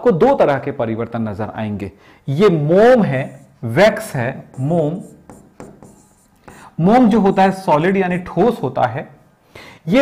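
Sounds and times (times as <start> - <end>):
pen tapping and scratching screen: 3.2 - 8.3.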